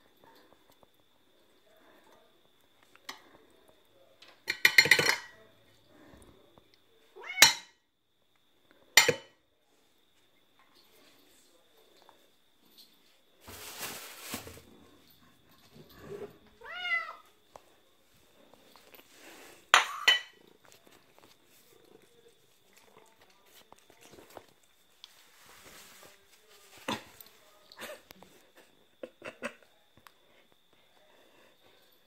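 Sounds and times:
plate clinking on tiled floor: 0:04.4 - 0:05.4, 0:07.3 - 0:07.8, 0:09.0 - 0:09.4, 0:19.7 - 0:20.4
cat meowing: 0:07.2 - 0:07.7, 0:16.6 - 0:17.2.

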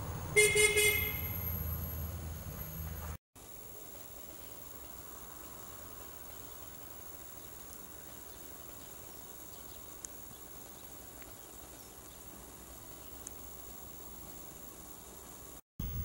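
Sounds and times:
faint steady hiss: 0:03.4 - 0:16.0.

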